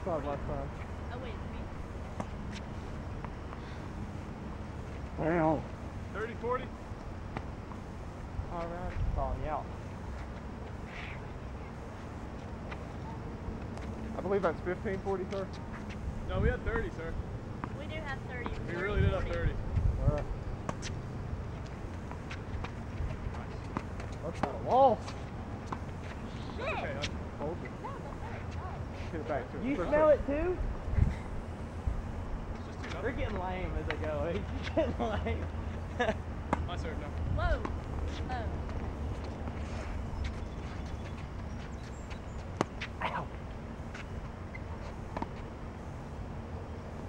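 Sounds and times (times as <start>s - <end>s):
wind rumble on microphone: 8.7s - 9.6s, 16.0s - 17.2s, 18.7s - 20.6s, 30.0s - 32.7s, 37.1s - 38.6s.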